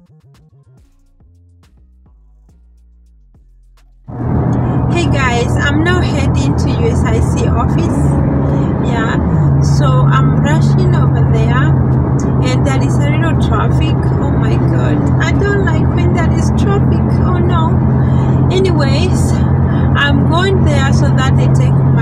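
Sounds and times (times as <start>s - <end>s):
car engine drone: 1.8s - 22.0s
road noise: 4.0s - 22.0s
woman talking: 4.6s - 22.0s.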